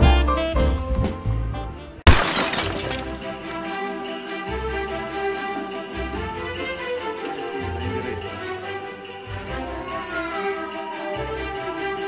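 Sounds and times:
swing music with saxophone: 0.0 - 2.0.

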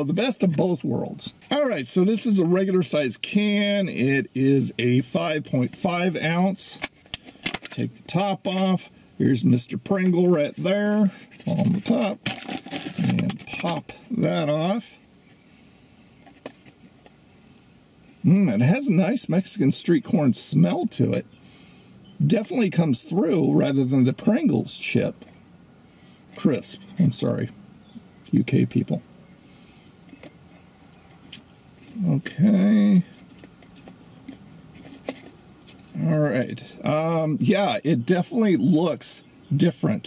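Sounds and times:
faint hiss: 0.0 - 39.5.

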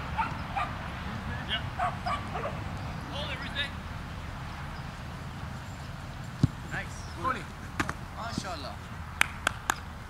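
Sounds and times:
soccer ball kick thump: 6.4 - 6.6.

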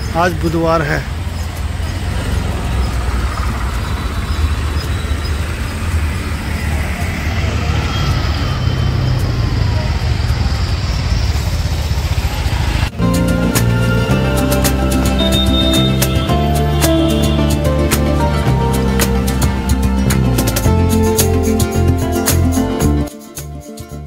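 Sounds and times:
traffic engines rumbling: 0.0 - 23.1
street hubbub: 0.0 - 24.0.

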